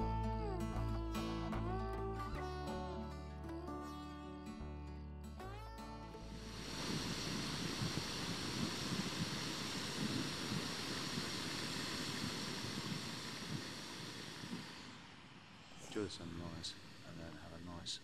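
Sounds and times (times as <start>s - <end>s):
guitar music: 0.0s - 7.0s
gas stove hissing: 6.2s - 18.0s.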